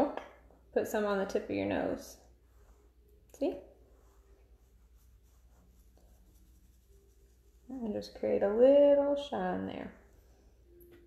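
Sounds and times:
makeup brush brushing skin: 1.5 - 8.9.

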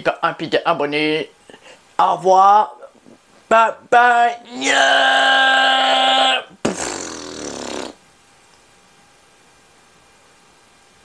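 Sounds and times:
man shouting: 3.5 - 6.6.

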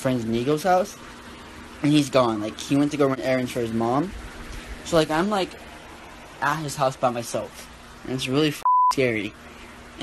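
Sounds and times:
boy talking: 0.0 - 1.0, 1.8 - 4.1, 4.8 - 5.6, 6.4 - 9.3
censor bleep: 8.6 - 9.0.

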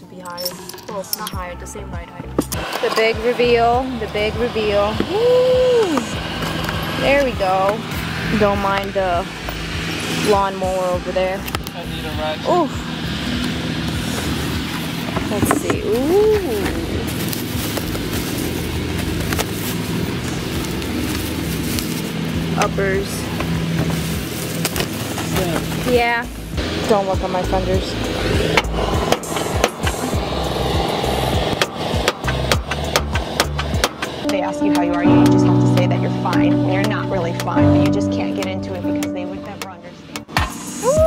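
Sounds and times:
lawnmower engine running: 2.6 - 38.6
cardboard and plastic crinkling: 15.1 - 22.3
background music with a beat: 26.4 - 41.0
hammer striking metal: 28.3 - 34.3.

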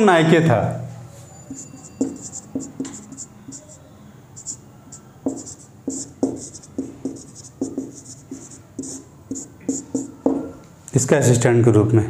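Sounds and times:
marker squeaking on whiteboard: 1.1 - 10.6.

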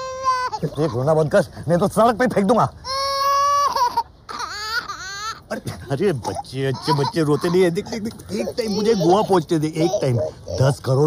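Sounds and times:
small boy crying: 0.0 - 1.2, 2.8 - 10.6.

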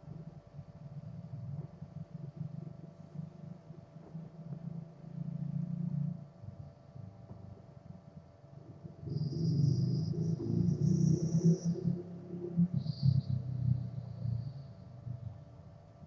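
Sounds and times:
faint steady hum: 0.0 - 16.0
low uneven rumble: 0.0 - 16.0.

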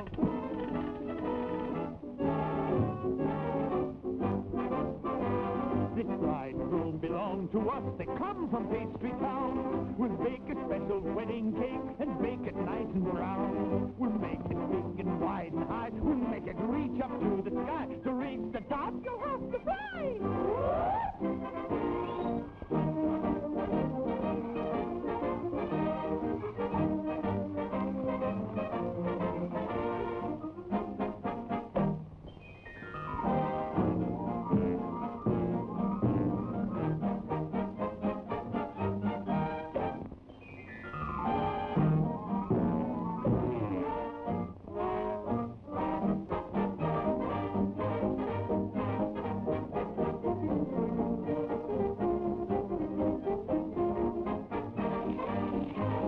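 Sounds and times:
brass-led orchestral cartoon music: 0.0 - 56.0.

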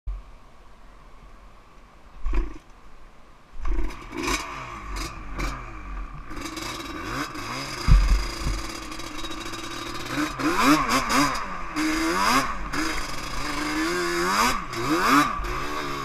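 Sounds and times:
quad engine revving: 3.6 - 16.0.

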